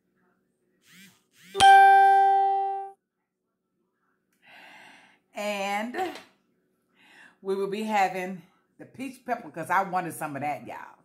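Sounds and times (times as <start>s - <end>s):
chime note: 1.6s - 3.0s.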